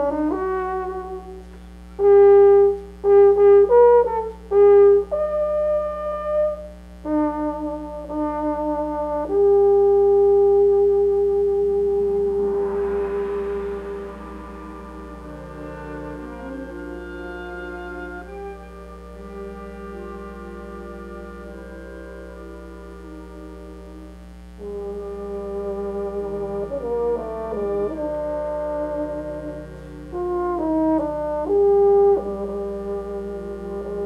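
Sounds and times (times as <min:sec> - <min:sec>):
brass sustained chord: 0:00.0 - 0:34.0
euphonium holding high note: 0:11.6 - 0:34.0
concert band held chord: 0:12.2 - 0:34.0.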